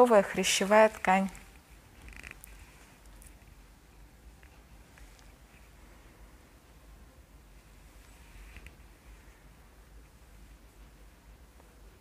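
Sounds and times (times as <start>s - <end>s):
faint low hum: 0.0s - 12.0s
soft rustles and ticks: 0.6s - 5.9s, 7.6s - 9.4s.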